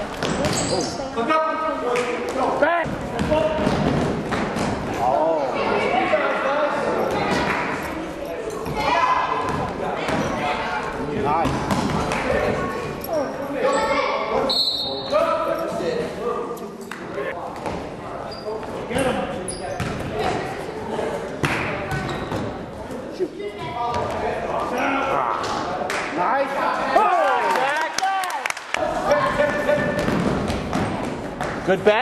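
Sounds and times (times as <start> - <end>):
chatter of people: 0.0 - 27.2.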